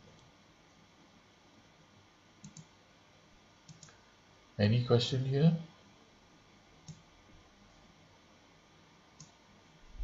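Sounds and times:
computer mouse clicks: 2.4 - 2.7, 3.6 - 4.0, 6.8 - 7.1, 9.2 - 9.4.

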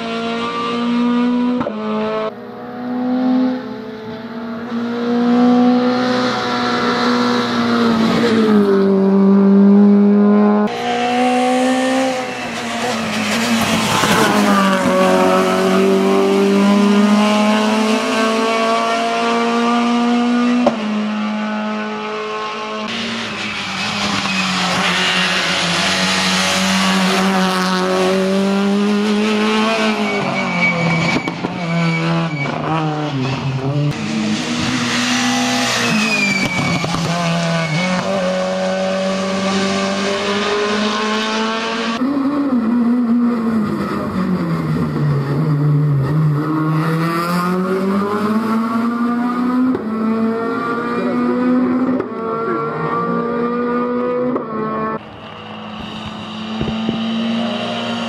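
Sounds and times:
rally car engine revving hard: 0.0 - 58.0.

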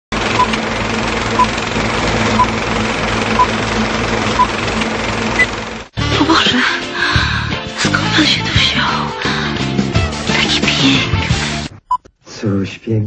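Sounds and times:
film projector whirring and clattering: 0.1 - 5.9.

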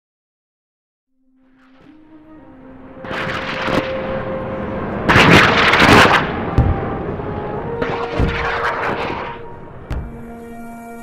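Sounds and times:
rapid gunfire: 5.1 - 6.3.

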